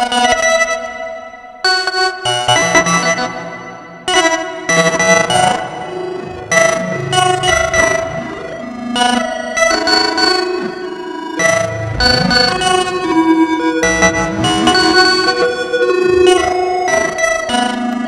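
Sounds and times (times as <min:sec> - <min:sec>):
modular synthesizer phrases: 0:11.4 - 0:17.3.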